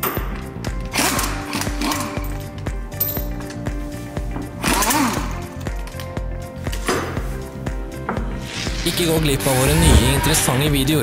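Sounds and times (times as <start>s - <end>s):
pneumatic impact wrench: 0.9s - 2.2s, 4.6s - 5.4s.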